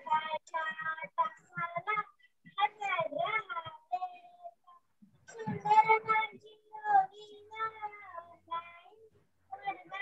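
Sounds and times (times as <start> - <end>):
girl singing: 0.0 - 10.0.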